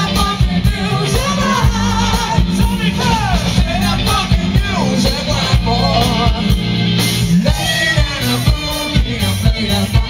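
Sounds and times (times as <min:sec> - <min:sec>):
person singing: 0:00.0 - 0:06.7, 0:07.3 - 0:10.0
drum kit beating: 0:00.0 - 0:10.0
electric bass low notes: 0:00.0 - 0:10.0
electric guitar: 0:00.0 - 0:10.0.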